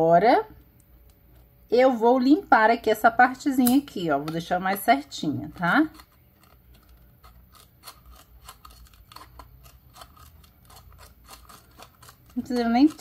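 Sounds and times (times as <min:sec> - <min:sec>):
scissors snipping plastic: 0:03.6 - 0:13.0.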